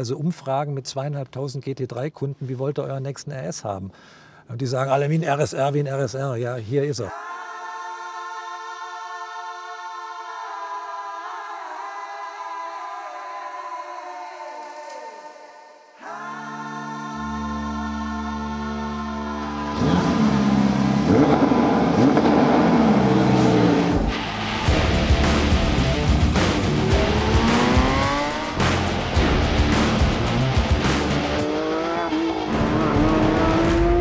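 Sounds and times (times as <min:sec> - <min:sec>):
background music: 0:07.0 - 0:34.0
car engine starting and revving: 0:19.4 - 0:34.0.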